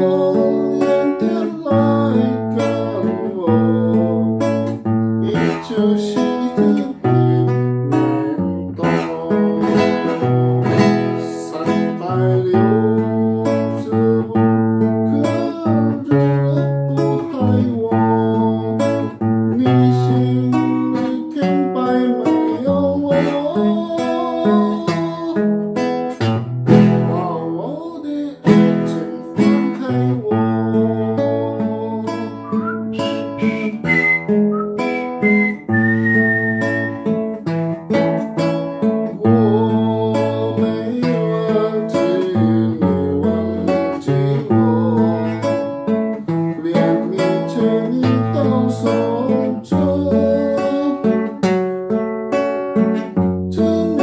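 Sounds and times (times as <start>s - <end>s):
fingerstyle acoustic guitar: 0.0s - 54.0s.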